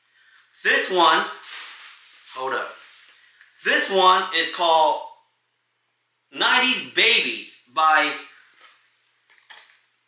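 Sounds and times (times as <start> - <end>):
man speaking: 0.6 - 1.4, 2.3 - 2.8, 3.6 - 5.2, 6.3 - 8.4.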